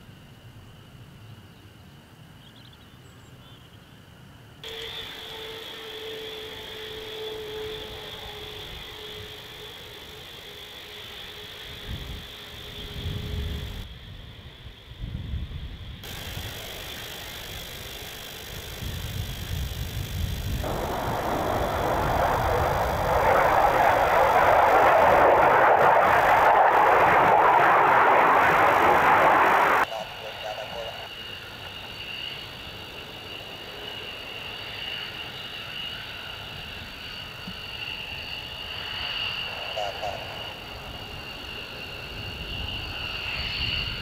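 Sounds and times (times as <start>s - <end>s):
jet engines high whine: 4.0s - 44.0s
lower tone sliding down: 20.3s - 29.9s
broad jet roar: 20.5s - 44.0s.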